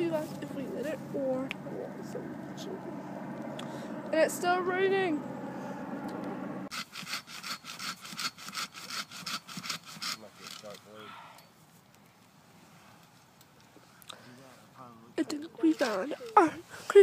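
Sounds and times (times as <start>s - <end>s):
hand saw cutting wood: 6.7s - 10.9s.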